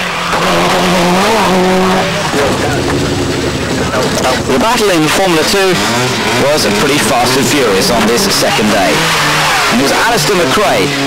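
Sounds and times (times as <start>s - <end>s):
rally car engine at speed: 0.0s - 11.0s.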